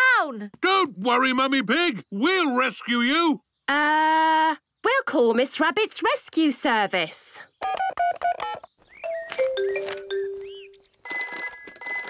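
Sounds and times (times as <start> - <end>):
telephone ringing: 9.3 - 12.0.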